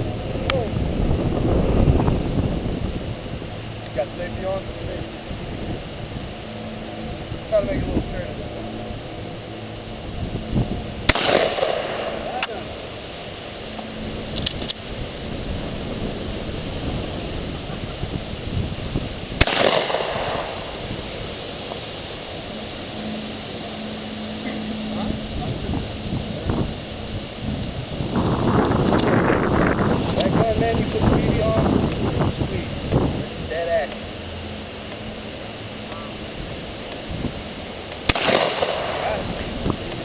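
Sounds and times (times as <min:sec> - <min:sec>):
gunshots with echo: 0:11.1 - 0:12.2, 0:19.4 - 0:20.6, 0:38.1 - 0:39.2.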